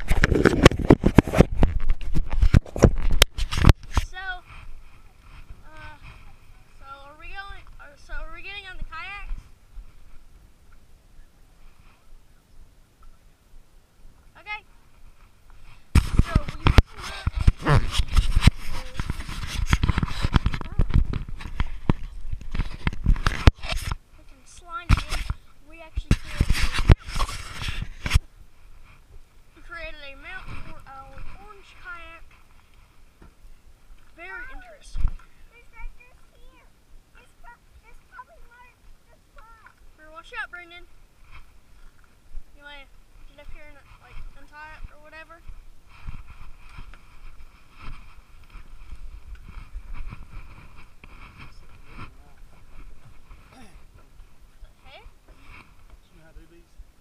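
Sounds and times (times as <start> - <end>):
camera case rubbing and scraping: 0.0 - 6.8, 15.1 - 24.0, 24.8 - 33.1, 41.2 - 42.0, 43.3 - 55.9.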